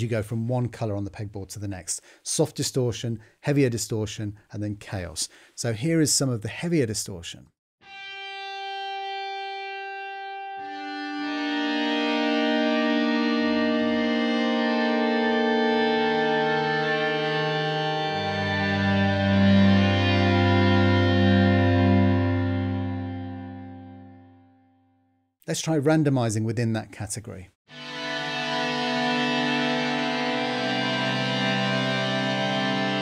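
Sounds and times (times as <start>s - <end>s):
distorted electric guitar feedback tones: 7.8s - 24.6s, 27.7s - 33.0s.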